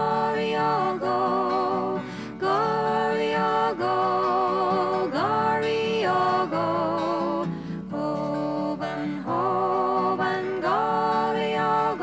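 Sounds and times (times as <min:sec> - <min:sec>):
woman singing a folk lullaby: 0:00.0 - 0:12.0.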